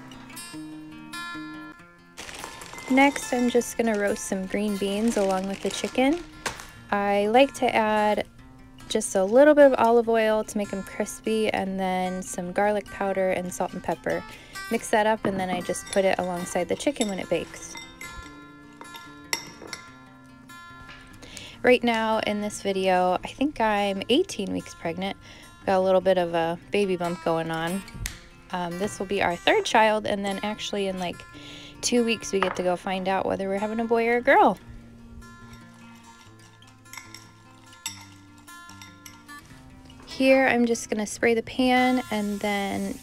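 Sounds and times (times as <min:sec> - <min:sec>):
soft acoustic guitar music: 0:00.0 - 0:43.0
metal fork clinking ceramic bowl: 0:35.5 - 0:39.3.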